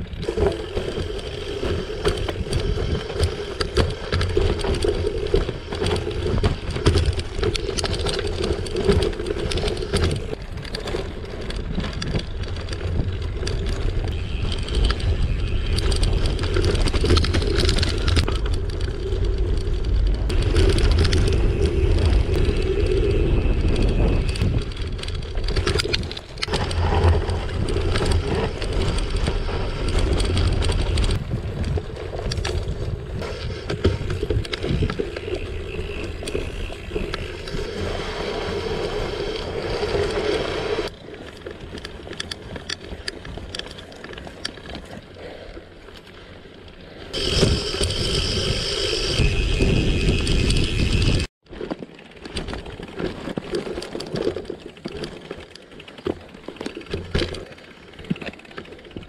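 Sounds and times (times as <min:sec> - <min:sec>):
bike rattling over bumps: 0:00.0 - 0:59.0
bike tyres on gravel: 0:00.0 - 0:59.0.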